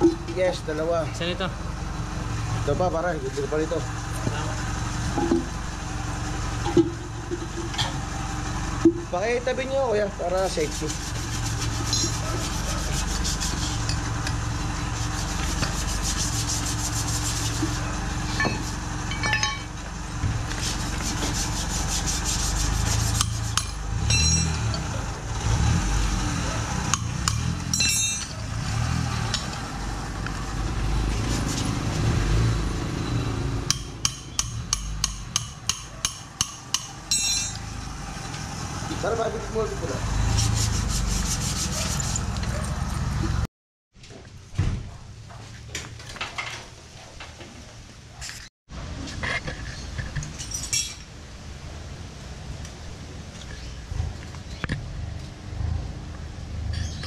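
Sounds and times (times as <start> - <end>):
metal parts clinking on concrete: 11.8 - 12.4, 18.3 - 19.8, 23.6 - 24.8, 27.7 - 28.4, 36.8 - 38.4, 49.5 - 51.1.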